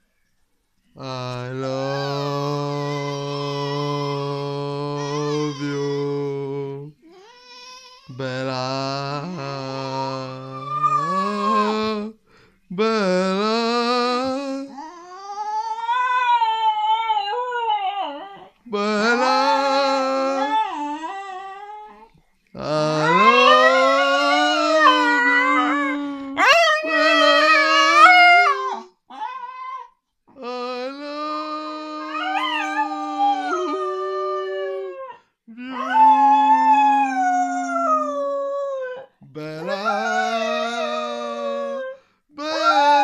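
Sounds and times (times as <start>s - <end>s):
person humming: 1.0s - 7.2s, 8.1s - 15.4s, 18.6s - 28.8s, 30.3s - 43.0s
dog howling: 10.4s - 12.0s, 14.8s - 18.5s, 23.0s - 29.9s, 32.0s - 43.0s.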